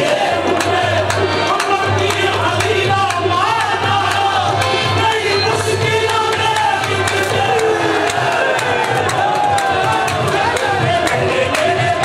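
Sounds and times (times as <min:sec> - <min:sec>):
crowd voices and cheering: 0:00.0 - 0:12.0
lead singers singing: 0:00.0 - 0:12.0
steady percussion: 0:00.0 - 0:12.0.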